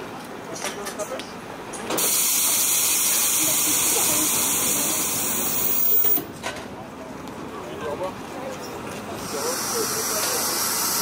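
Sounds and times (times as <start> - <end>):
steam train hissing: 1.9 - 6.2, 9.1 - 11.0.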